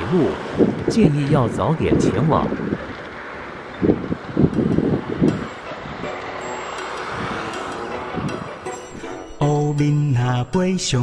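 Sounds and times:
wind buffeting microphone: 0.0 - 6.4, 7.0 - 9.0
steady background wind: 0.0 - 9.3.

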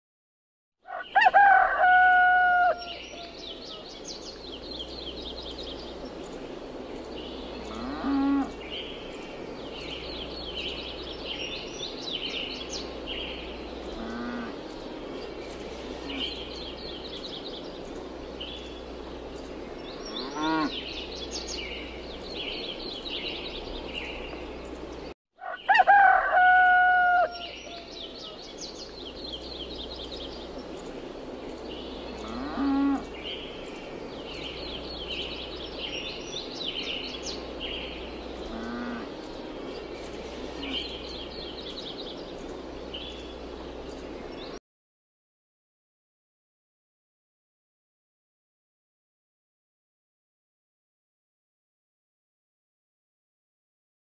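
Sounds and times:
rooster crowing: 0.8 - 3.8, 25.4 - 28.4
small birds chirping: 2.8 - 25.6, 27.3 - 44.6
low animal calls: 32.2 - 33.1, 38.4 - 39.2.

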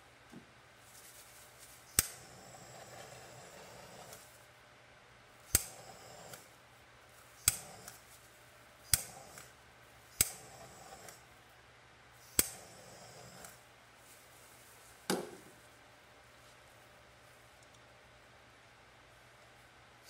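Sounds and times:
hiss of gas and flame: 1.8 - 4.5, 5.4 - 11.4, 12.1 - 13.6
torch igniter clicking: 1.9 - 2.2, 5.5 - 6.4, 7.4 - 8.0, 8.8 - 9.5, 10.1 - 11.2, 12.2 - 12.7.

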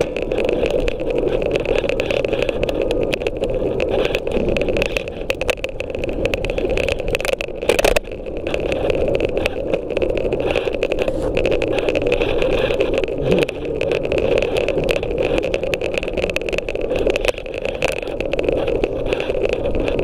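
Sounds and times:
scooter wheels rolling on concrete: 0.0 - 20.0
small clicks and rattles: 0.0 - 20.0.

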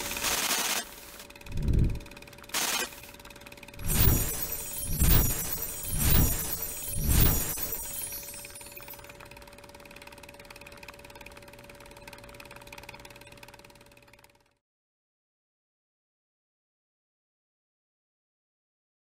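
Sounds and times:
steady hum: 0.0 - 12.0
loud mechanical hits: 3.8 - 8.9.

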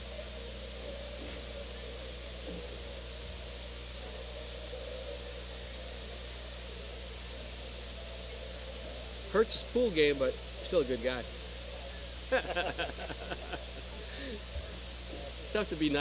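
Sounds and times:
low hum: 0.0 - 16.0.

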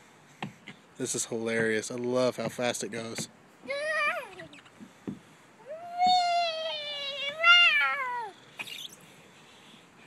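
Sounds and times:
toddler squealing: 5.7 - 9.0.

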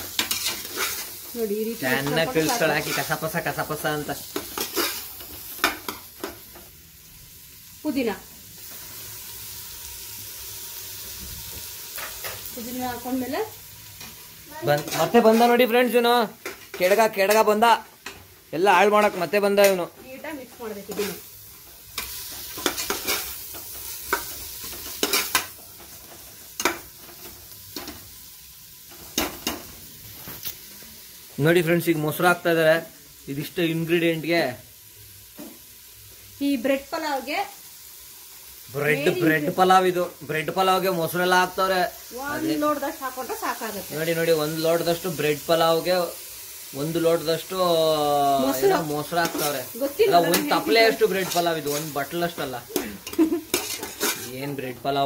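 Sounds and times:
vegetables sizzling in oil: 0.0 - 55.0
person speaking: 46.8 - 53.0
spatula scraping and knocking pot: 53.1 - 54.3.

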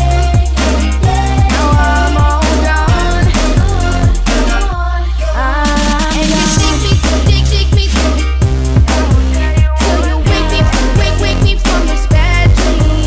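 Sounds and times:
sustained synth chords: 0.0 - 12.8
steady bass: 0.0 - 13.0
kick drum: 6.6 - 13.0.

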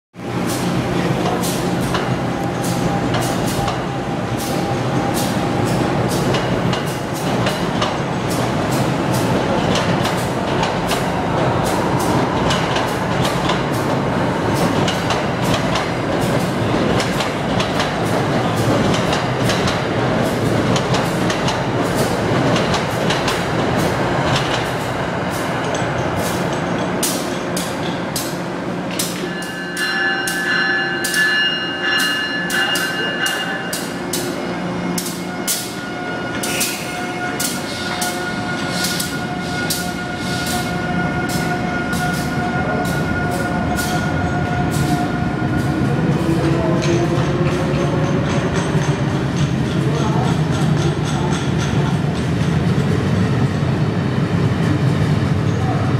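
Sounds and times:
train rumble: 0.2 - 55.9.

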